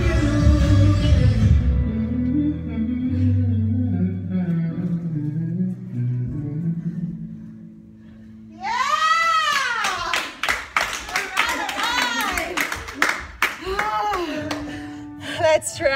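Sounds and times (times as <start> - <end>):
short whoops and voices: 8.5 - 10.3
group clapping: 9.2 - 15.0.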